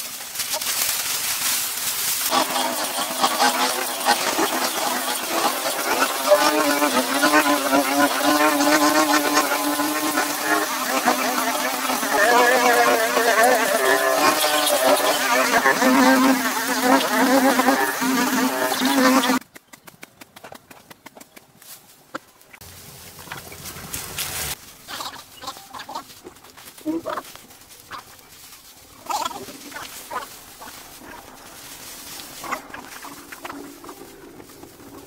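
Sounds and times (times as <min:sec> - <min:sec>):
brush cutters buzzing: 0:00.4 - 0:19.4.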